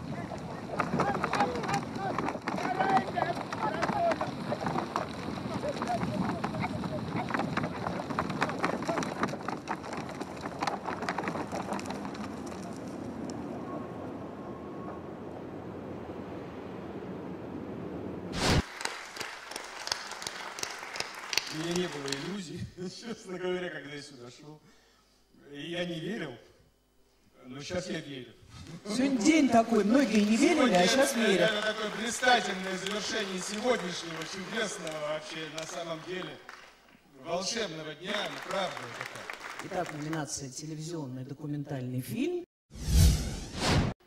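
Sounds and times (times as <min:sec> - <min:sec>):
people shouting: 0:00.0 - 0:04.7
audience applause: 0:00.0 - 0:12.5, 0:18.6 - 0:22.5, 0:28.9 - 0:40.3
hooves clattering: 0:00.0 - 0:13.6, 0:28.8 - 0:37.0.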